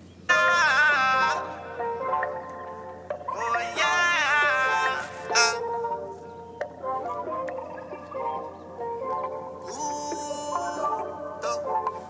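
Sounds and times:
instrumental background music: 0.3s - 12.0s.

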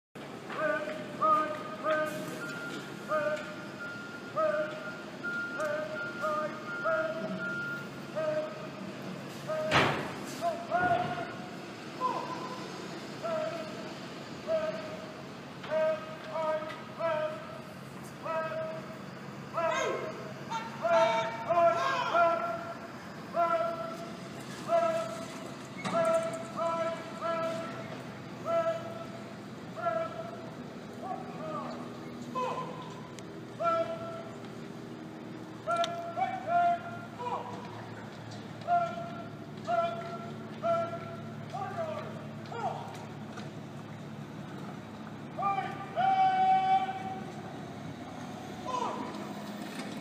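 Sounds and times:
man calling marching cadence: 0.2s - 49.4s
person shouting drill command: 0.5s - 8.8s, 9.4s - 34.4s, 35.6s - 37.8s, 38.6s - 43.1s, 45.3s - 47.4s, 48.6s - 49.2s.

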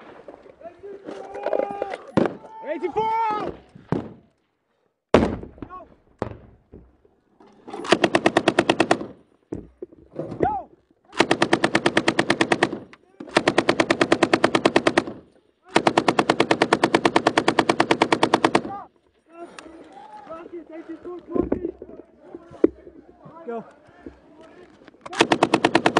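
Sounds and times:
gunshot cracks: 5.1s - 6.4s
machine gun bursts: 11.2s - 18.7s, 25.1s - 25.9s.

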